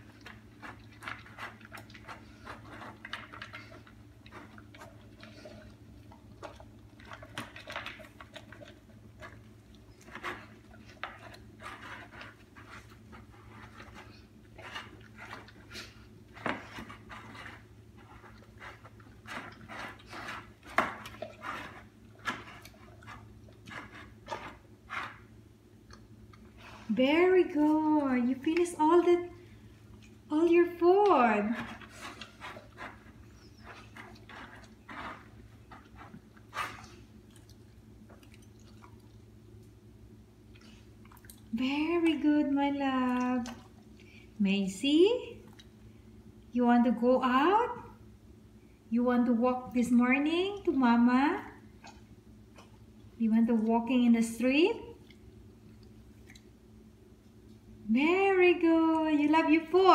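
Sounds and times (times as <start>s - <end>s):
dog chewing from plastic bowl: 0.0s - 26.1s, 27.4s - 39.6s
steady low hum: 0.0s - 59.9s.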